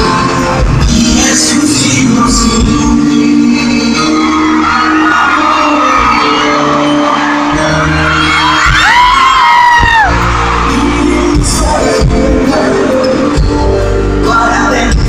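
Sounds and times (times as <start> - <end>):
live band music: 0.0 - 15.0.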